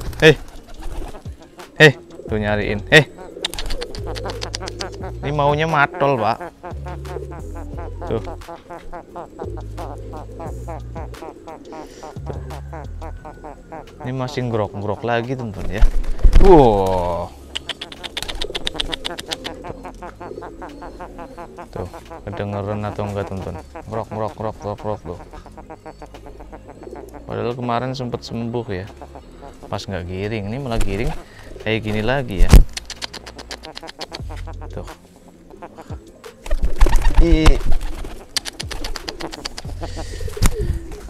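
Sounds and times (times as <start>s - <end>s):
wing flaps: 0.0s - 2.0s, 3.4s - 5.8s, 15.4s - 20.1s, 30.6s - 35.0s, 36.2s - 41.0s
pigeon rattling call: 0.0s - 41.0s.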